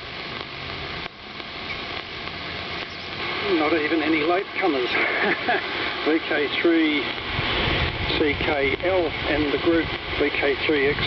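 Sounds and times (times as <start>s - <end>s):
radio static hiss: 0.0s - 11.0s.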